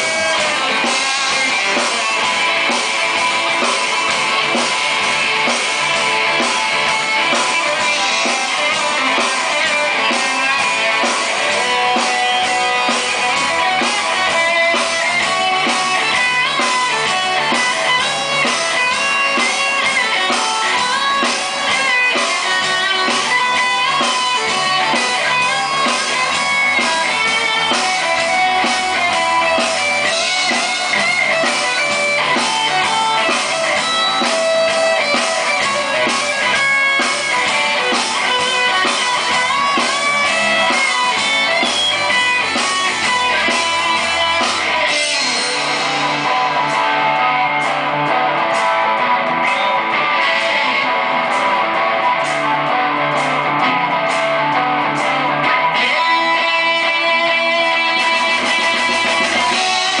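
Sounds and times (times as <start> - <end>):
electric guitars playing rock: 0.0 - 60.0.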